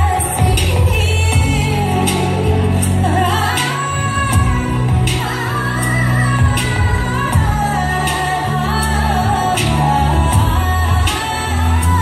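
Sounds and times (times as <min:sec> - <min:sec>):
steady bass line: 0:00.0 - 0:12.0
woman singing: 0:00.0 - 0:12.0.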